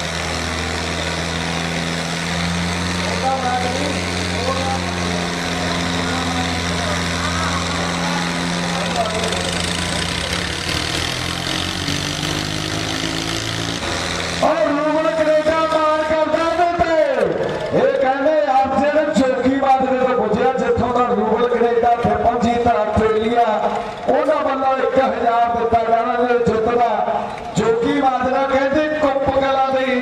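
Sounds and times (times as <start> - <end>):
diesel tractor engines droning: 0.0 - 30.0
man speaking loudly: 3.2 - 5.2, 14.4 - 30.0.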